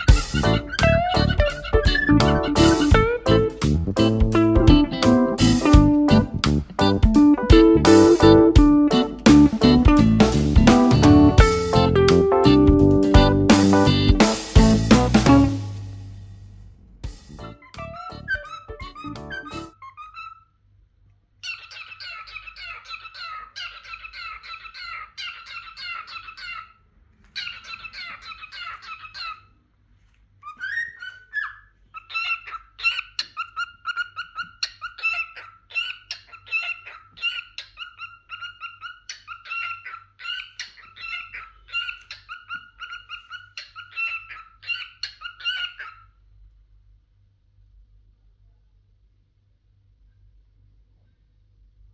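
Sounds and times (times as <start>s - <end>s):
cockatiel chattering and warbling: 0.0s - 4.2s, 13.1s - 14.1s, 17.3s - 20.5s, 21.4s - 29.5s, 30.4s - 46.1s
cockatiel rising whistle: 17.4s - 19.7s.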